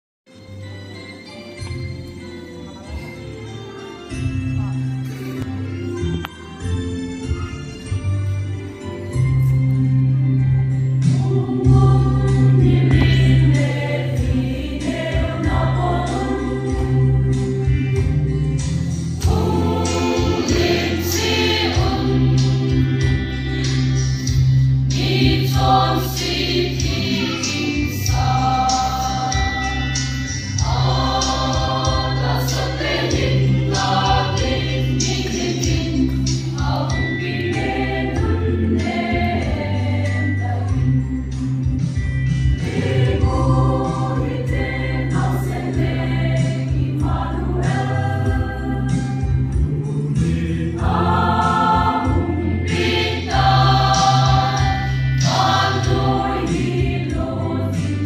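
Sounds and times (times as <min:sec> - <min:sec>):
mixed choir singing a hymn: 0:10.9 - 0:41.2, 0:42.5 - 0:58.0.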